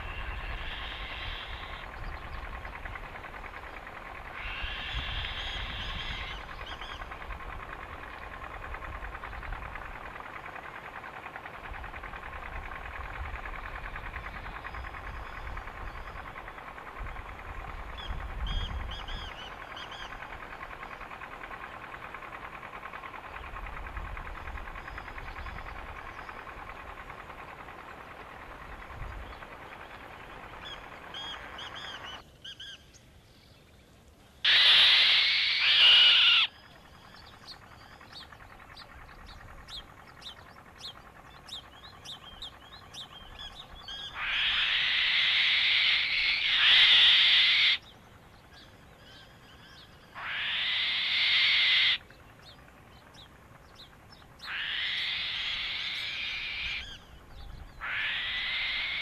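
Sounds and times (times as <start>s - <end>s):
bird calling drawn-out: 0.0s - 33.0s, 34.4s - 59.0s
steady background hiss: 0.0s - 59.0s.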